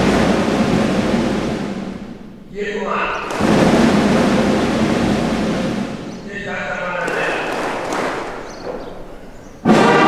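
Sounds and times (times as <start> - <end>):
crowd applauding: 3.1 - 4.8, 6.5 - 10.0.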